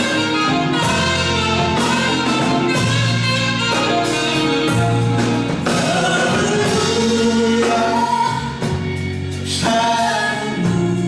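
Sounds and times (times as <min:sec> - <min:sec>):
orchestra playing: 0:00.0 - 0:11.0
singers holding long notes: 0:04.8 - 0:08.8.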